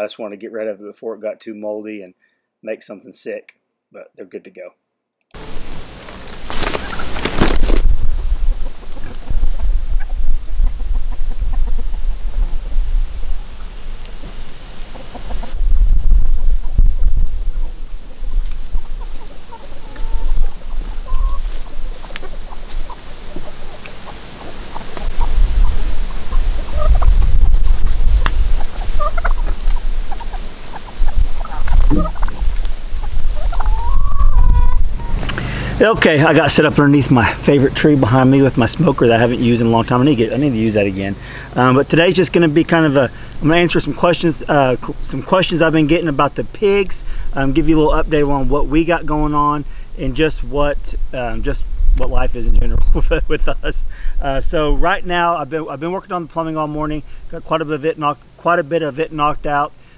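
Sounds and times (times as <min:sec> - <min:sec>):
low rumbling noise: 0:05.4 - 0:46.5
chickens clucking: 0:06.4 - 0:07.8, 0:08.5 - 0:49.6
turkey calling: 0:13.5 - 0:15.6, 0:17.4 - 0:35.8.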